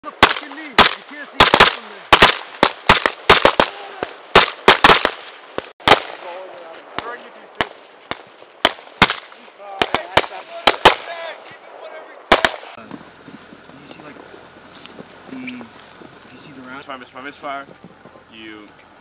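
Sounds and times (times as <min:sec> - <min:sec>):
rifle shots: 0:00.1 - 0:06.3, 0:06.9 - 0:11.3, 0:12.3 - 0:12.8.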